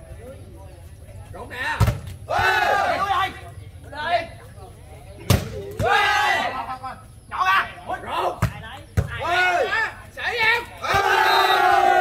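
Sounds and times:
voices shouting: 1.4 - 12.0.

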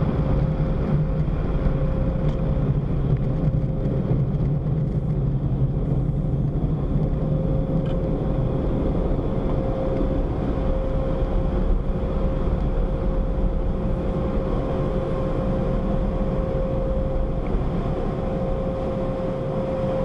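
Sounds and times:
thin steady hum: 0.0 - 20.0.

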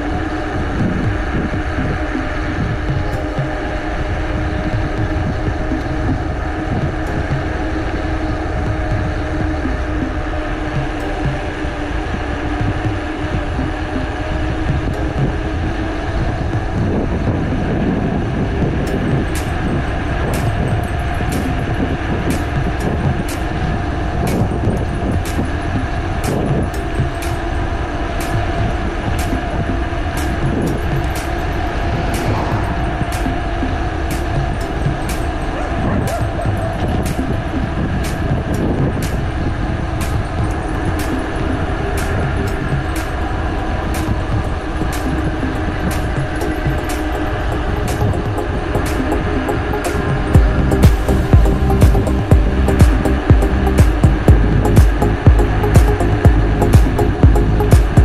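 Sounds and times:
bicycle road rumble on asphalt: 0.0 - 58.0
wind: 0.0 - 58.0.

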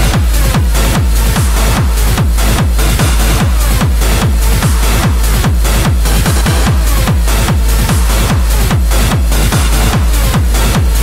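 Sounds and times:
hard trance dance music: 0.0 - 11.0
heavy kick drum: 0.0 - 11.0.

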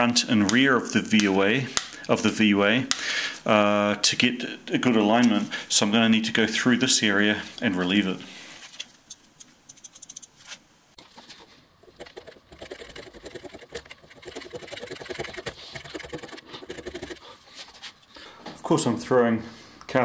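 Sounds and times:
hand scraper scraping metal: 11.0 - 18.0.

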